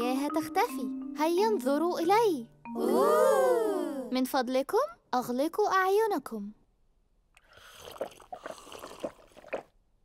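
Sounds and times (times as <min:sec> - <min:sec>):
cartoon gulps and slurps: 0:07.4 - 0:09.9.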